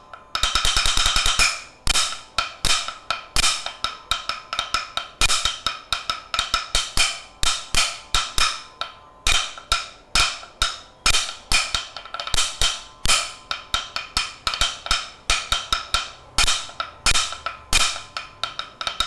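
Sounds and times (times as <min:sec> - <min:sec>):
sticks striking wooden stool: 0:11.1 - 0:19.0.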